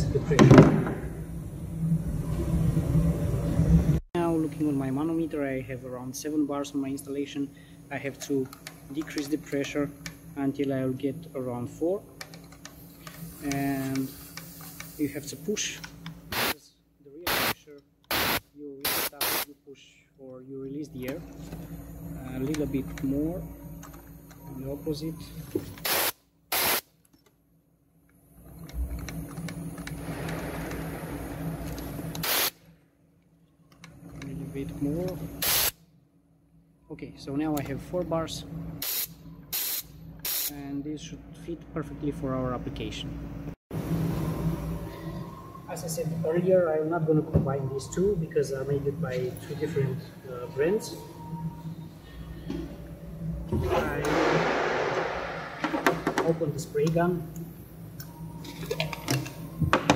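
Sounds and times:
compressed air hissing: 12.7s - 15.6s, 16.3s - 16.6s, 17.3s - 19.5s, 25.8s - 26.8s, 30.0s - 32.6s, 35.4s - 35.8s, 38.8s - 40.6s.

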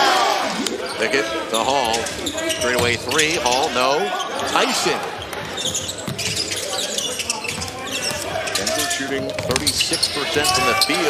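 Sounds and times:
crowd murmur: 0.0s - 10.9s
basketball dribbling: 1.8s - 3.7s, 5.1s - 11.0s
sneaker squeaks: 1.8s - 11.0s.

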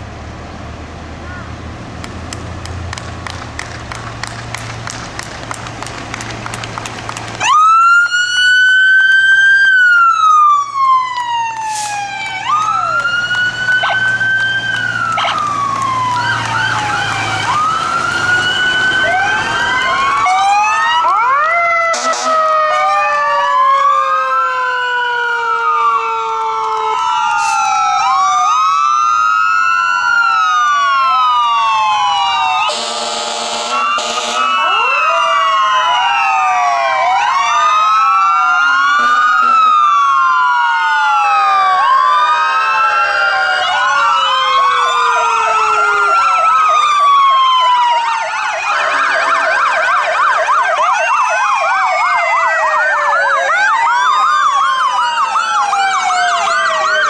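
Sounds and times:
vehicle engine rumble: 0.0s - 24.0s
emergency vehicle sirens wailing: 0.0s - 57.0s.

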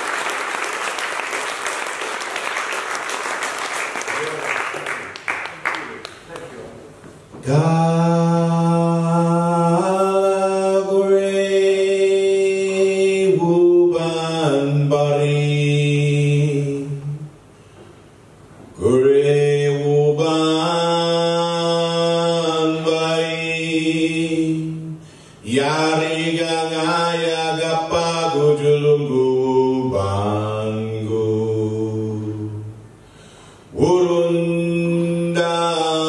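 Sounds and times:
man chanting into a microphone: 7.4s - 17.3s, 18.8s - 32.7s, 33.7s - 36.0s.

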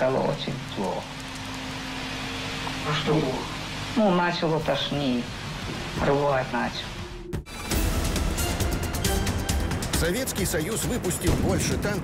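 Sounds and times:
film recording hiss: 0.0s - 7.7s.

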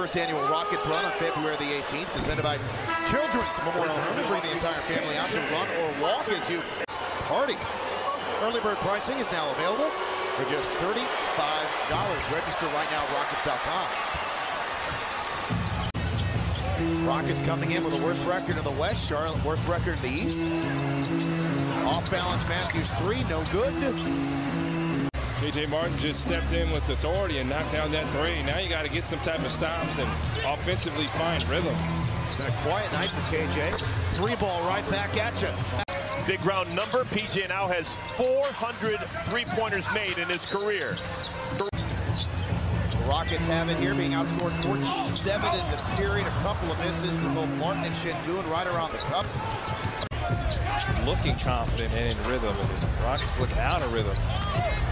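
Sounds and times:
crowd noise: 0.0s - 54.9s.

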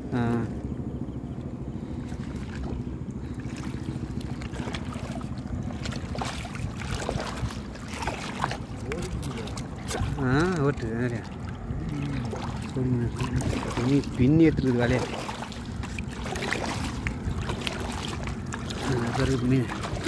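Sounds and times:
boat engine humming: 0.0s - 20.0s.

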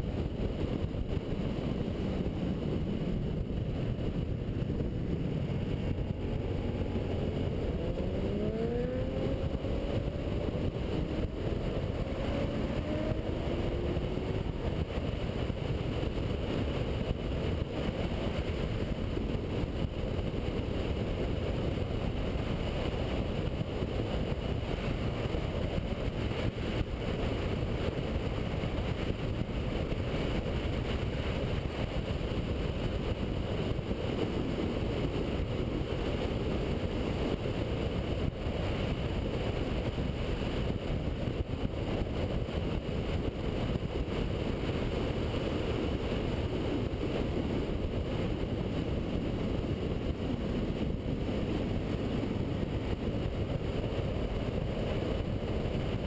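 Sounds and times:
motorcycle engine accelerating: 0.0s - 39.7s
wind rush on microphone: 0.0s - 56.0s.

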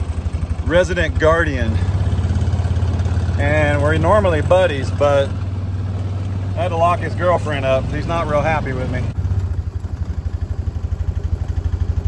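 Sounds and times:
utility vehicle engine idling: 0.0s - 12.0s.

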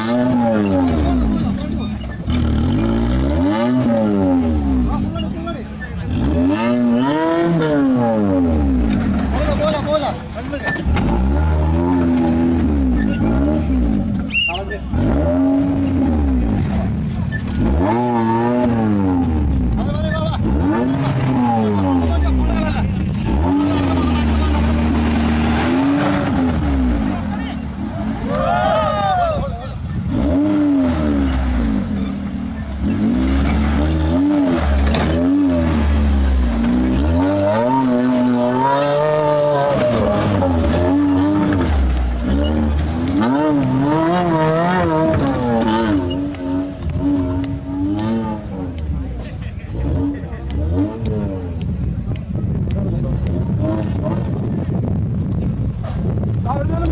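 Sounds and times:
engine revving hard: 0.0s - 1.5s, 2.3s - 5.1s, 6.0s - 9.6s, 10.8s - 14.1s, 14.9s - 28.6s, 30.0s - 51.6s, 52.8s - 54.7s.

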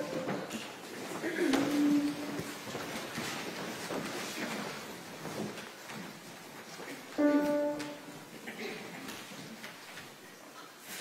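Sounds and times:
rustling and shuffling: 0.0s - 11.0s.

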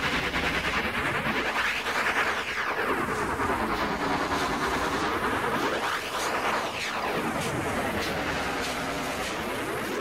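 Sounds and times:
swept hissing noise: 0.0s - 10.0s.

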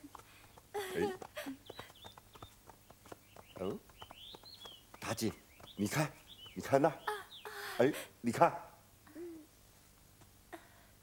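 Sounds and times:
birds chirping: 0.0s - 8.8s.

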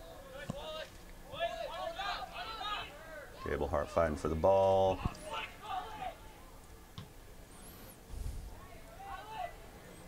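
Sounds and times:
distant voices shouting: 0.0s - 4.2s, 5.0s - 6.6s, 8.6s - 10.0s.

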